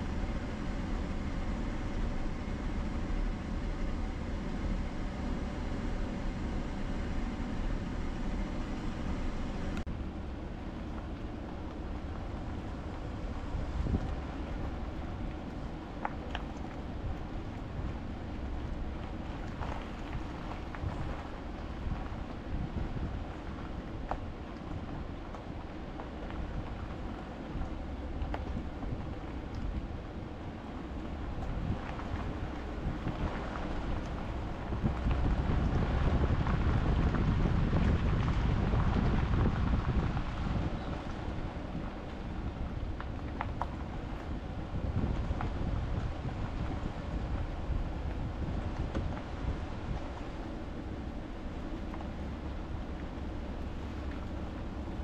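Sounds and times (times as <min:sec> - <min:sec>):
truck engine rumble: 0:00.0 - 0:55.0
wind on microphone: 0:11.9 - 0:25.2, 0:31.1 - 0:51.3.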